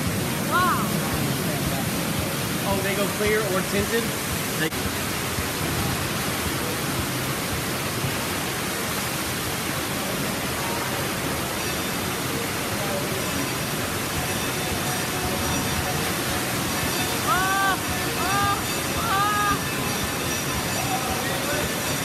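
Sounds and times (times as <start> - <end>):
water rushing and splashing: 0.0 - 22.0
faint voices: 0.1 - 7.4, 9.9 - 22.0.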